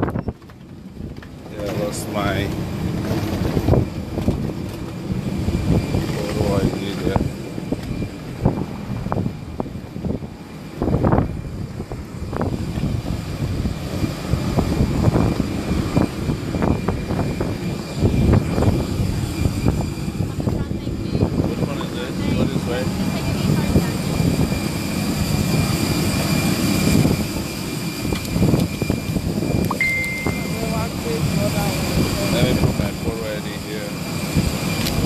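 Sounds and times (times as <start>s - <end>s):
aircraft engines rumbling: 0.0s - 35.0s
wind buffeting microphone: 0.0s - 35.0s
faint high whine: 29.0s - 33.7s.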